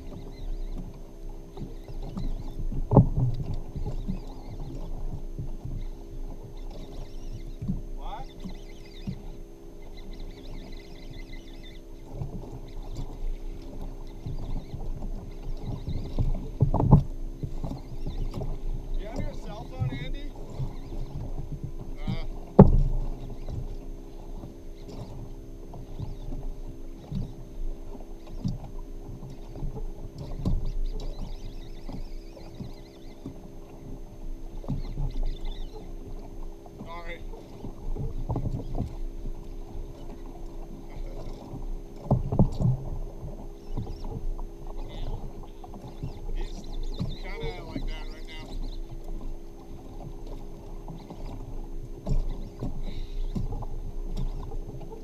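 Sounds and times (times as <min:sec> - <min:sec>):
steady low hum: 0:00.0 - 0:55.0
water slapping against kayak hull: 0:00.0 - 0:55.0
sharp knocks on hull: 0:01.6 - 0:04.0, 0:15.6 - 0:23.7.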